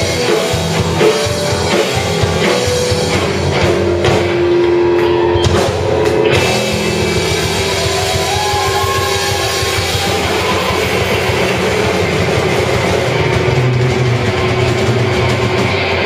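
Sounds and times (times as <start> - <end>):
rock band playing: 0.0 - 16.0.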